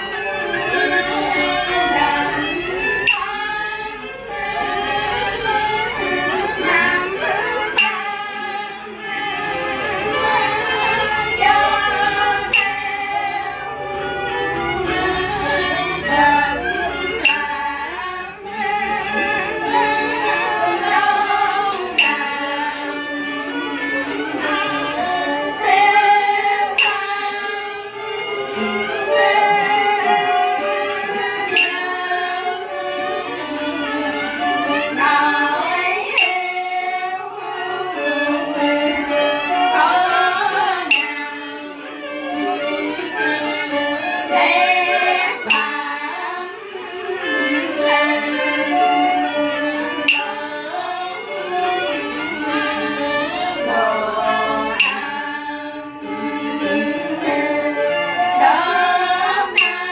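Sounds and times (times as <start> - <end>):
stringed instrument: 0.0 - 59.9
women chanting in unison: 0.6 - 9.0, 9.6 - 23.4, 24.4 - 27.9, 29.0 - 32.7, 35.0 - 41.7, 42.8 - 51.4, 53.4 - 55.9, 56.6 - 59.9
short sharp click: 50.1 - 50.3.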